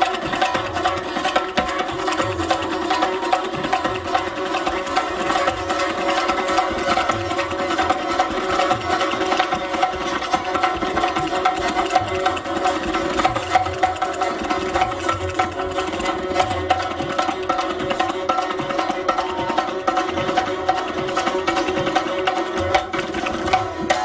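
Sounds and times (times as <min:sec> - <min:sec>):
rapid percussion strokes: 0:00.0 - 0:24.0.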